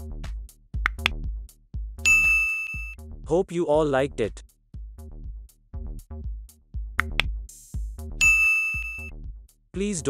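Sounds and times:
electronic music with beat: 0.0s - 3.0s, 5.0s - 10.0s
notification bell ding: 2.1s - 3.0s, 8.2s - 9.1s.

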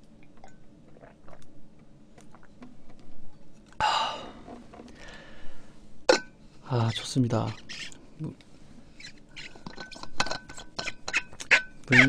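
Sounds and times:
cup clicking and squeaking: 6.9s - 8.0s, 9.0s - 12.0s.

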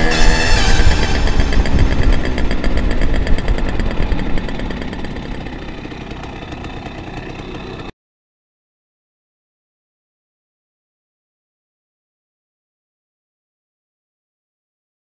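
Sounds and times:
moped two-stroke engine running: 0.0s - 7.9s.

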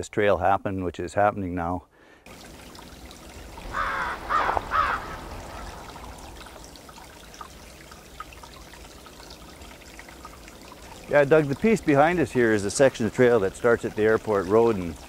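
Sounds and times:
faint rushing background: 2.3s - 12.9s
crow cawing: 3.6s - 6.7s.

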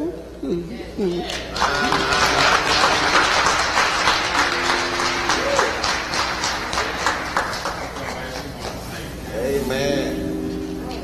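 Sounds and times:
crowd clapping: 1.2s - 8.9s.

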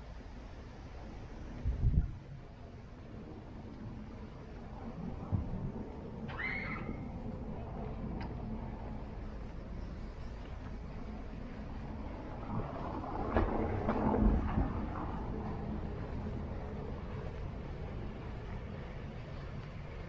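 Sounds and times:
street background noise: 0.0s - 20.0s
knocks and rumbling: 11.4s - 18.9s.

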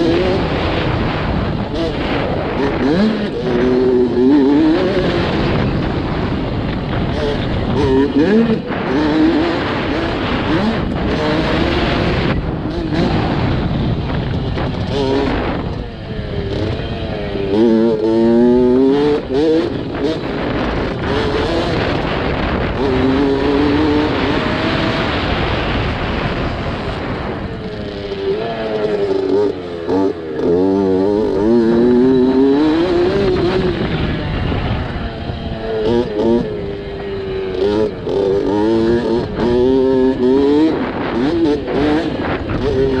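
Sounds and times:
dirt bike engine revving: 0.0s - 43.0s.

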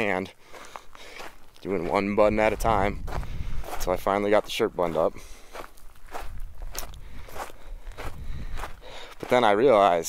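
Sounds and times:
footsteps: 0.0s - 10.0s.

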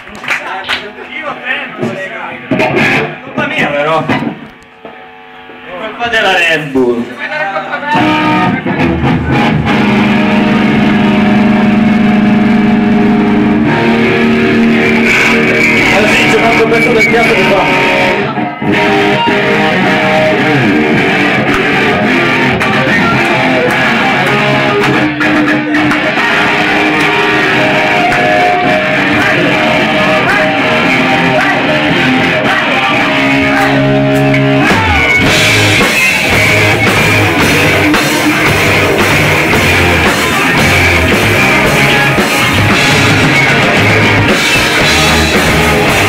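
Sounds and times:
electric guitars: 0.0s - 46.0s
punk rock band playing live: 1.6s - 4.5s, 7.1s - 46.0s
drum kit: 1.8s - 4.4s, 8.0s - 46.0s.

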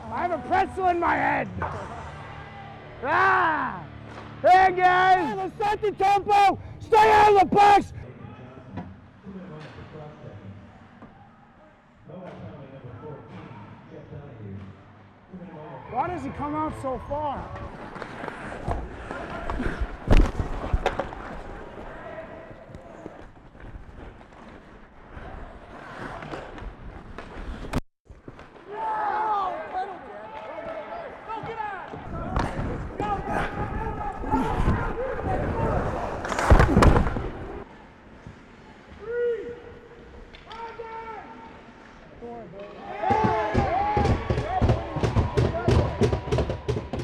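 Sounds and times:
players shouting: 4.5s - 7.9s, 42.6s - 46.6s
skates and sticks scraping: 17.4s - 28.8s, 31.4s - 39.4s.

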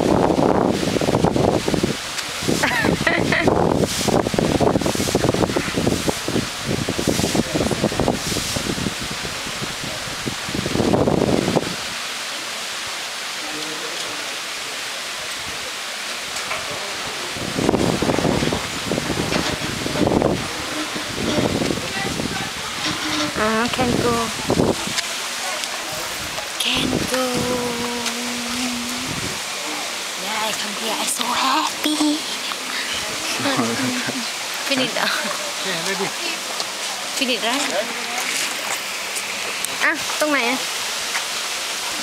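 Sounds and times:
wind buffeting microphone: 0.0s - 12.0s, 17.3s - 25.0s, 25.9s - 29.5s
wind through leaves: 0.0s - 42.0s
faint voices: 12.1s - 40.6s.

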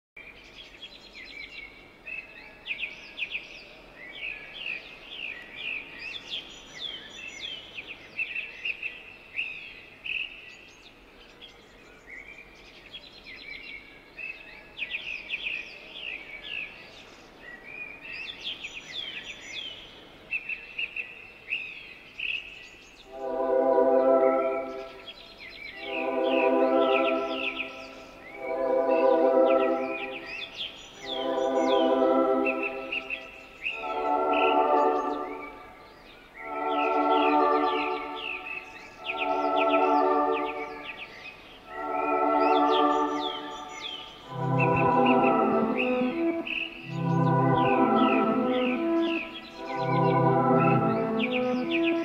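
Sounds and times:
small birds chirping: 0.2s - 52.0s
loud held music chord: 23.1s - 52.0s.

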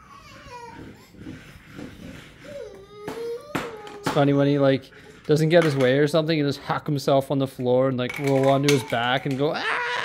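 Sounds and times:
toddler crying: 0.0s - 1.3s, 2.4s - 4.2s.

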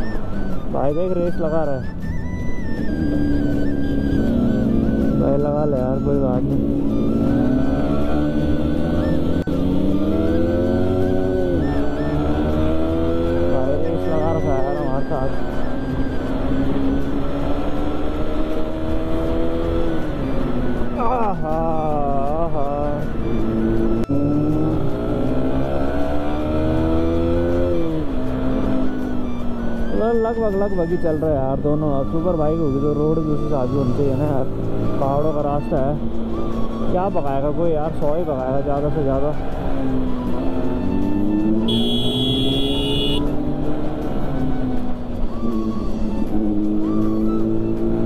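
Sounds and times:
motorcycle engine accelerating: 2.0s - 22.1s, 22.8s - 29.7s, 39.3s - 48.0s.

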